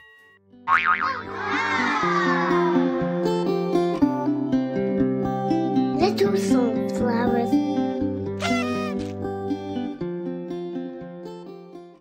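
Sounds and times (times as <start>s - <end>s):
wobbly cartoon boing effect: 0.7s - 1.4s.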